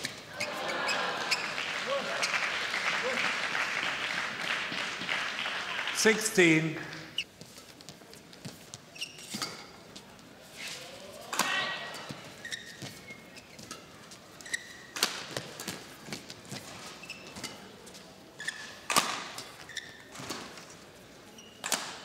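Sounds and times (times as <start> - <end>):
shoes squeaking on court: 0.0 - 2.5, 6.8 - 22.0
racket striking shuttlecock: 11.3 - 12.2, 14.9 - 15.8, 18.9 - 19.6.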